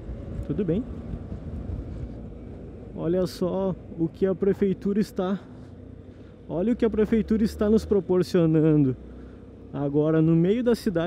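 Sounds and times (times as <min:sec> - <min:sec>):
wind rumble on microphone: 0:00.0 - 0:03.0.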